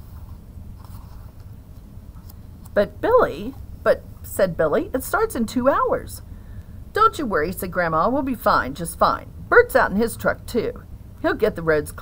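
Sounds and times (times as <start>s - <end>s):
book page turning: 0.0s - 2.4s
low steady hum: 0.0s - 12.0s.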